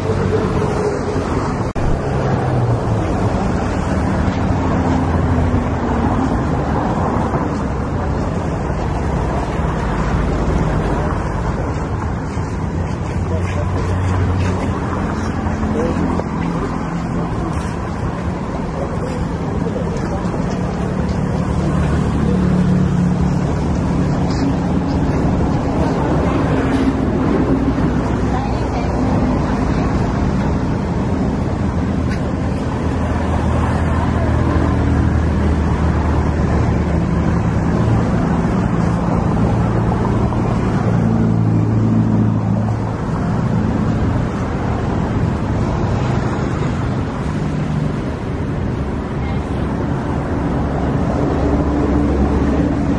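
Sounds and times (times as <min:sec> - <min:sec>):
street traffic: 0:00.0 - 0:52.9.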